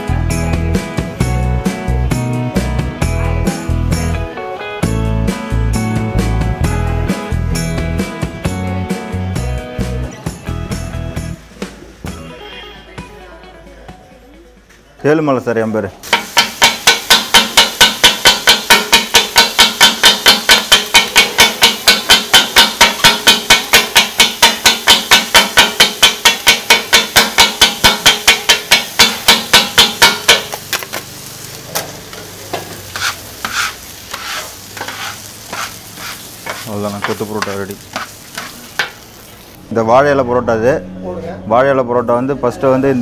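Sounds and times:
steel blades clattering on griddle: 0:16.0 - 0:31.1, 0:31.7 - 0:39.0
light sizzle: 0:16.0 - 0:39.6
taps and scrapes on griddle: 0:16.1 - 0:31.1, 0:31.7 - 0:39.0.

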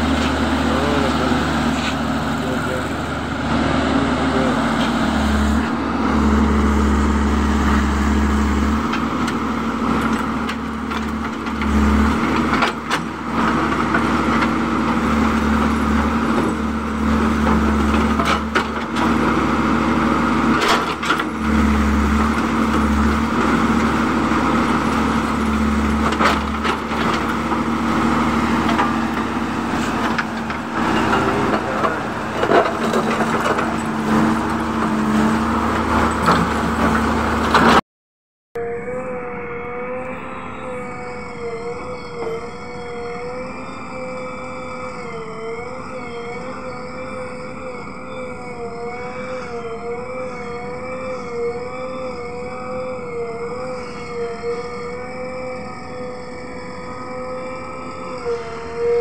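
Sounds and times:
diesel engine running under load: 0:00.0 - 0:37.8, 0:38.6 - 0:59.0.

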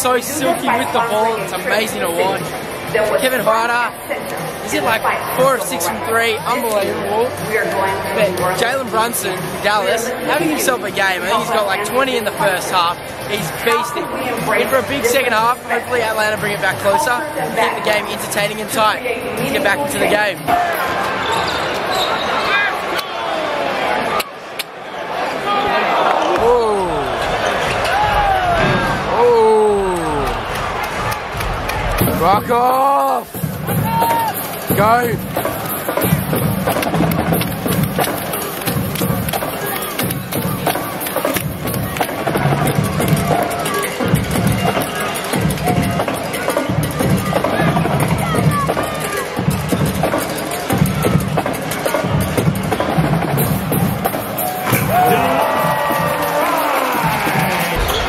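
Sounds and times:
loud arena noise: 0:00.0 - 0:58.0
music with drum beat: 0:31.8 - 0:58.0
drawn-out falling shouts: 0:54.6 - 0:58.0.

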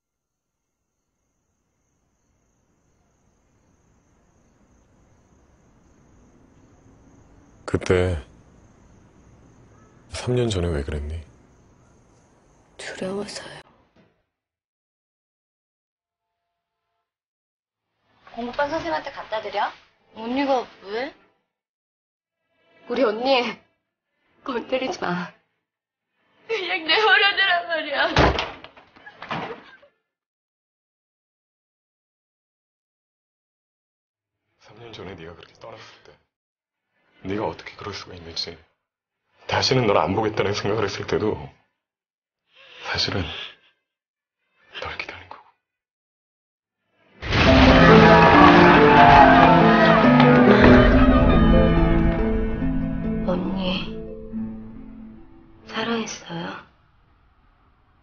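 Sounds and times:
insect chorus trilling: 0:01.0 - 0:13.6.

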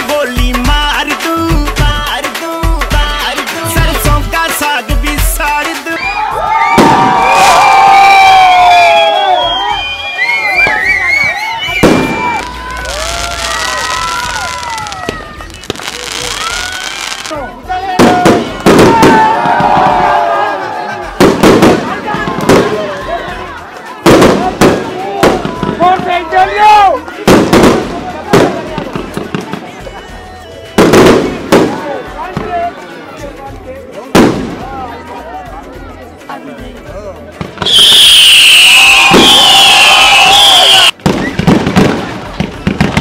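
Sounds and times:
crowd shouting and talking: 0:00.0 - 0:43.0
fireworks bangs: 0:06.6 - 0:20.3, 0:21.0 - 0:23.4, 0:24.0 - 0:26.4, 0:27.1 - 0:32.6, 0:34.1 - 0:34.8, 0:37.4 - 0:43.0
fireworks hissing: 0:08.9 - 0:26.4.

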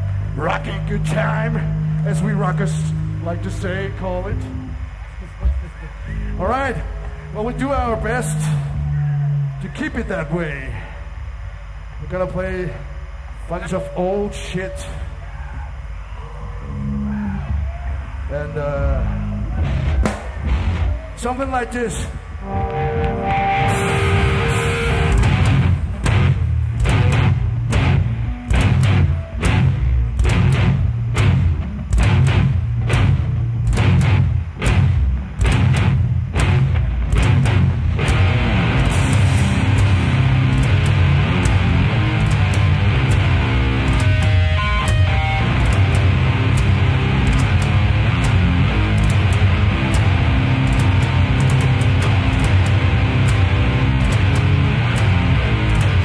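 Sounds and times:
distorted electric guitar: 0:00.0 - 0:56.0
death metal band playing live: 0:06.3 - 0:10.1, 0:18.8 - 0:21.0, 0:22.4 - 0:56.0.

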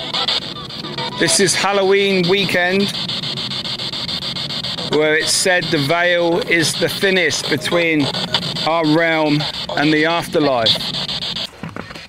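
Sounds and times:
chopped radio static: 0:00.0 - 0:12.0.

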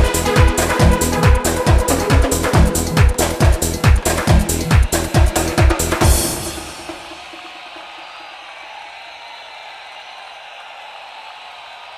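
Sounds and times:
electronic dance track echo: 0:00.0 - 0:08.4.

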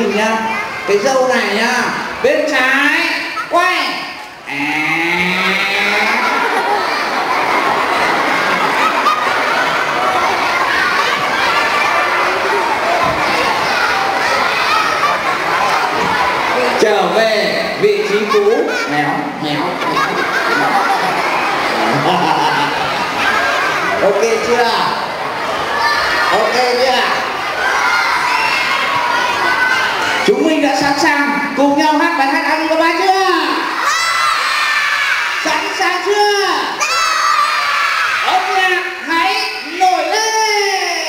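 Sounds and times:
children calling out and chattering: 0:00.0 - 0:41.0.

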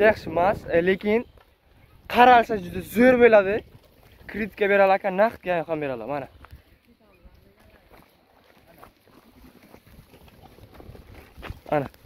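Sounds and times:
wind rumble on microphone: 0:00.0 - 0:04.6, 0:09.4 - 0:12.0
rustles and ticks in dry scrub: 0:00.0 - 0:12.0.

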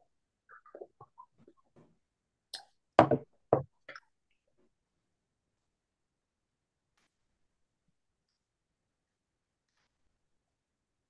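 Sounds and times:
mug knocking on desk: 0:03.0 - 0:03.7.

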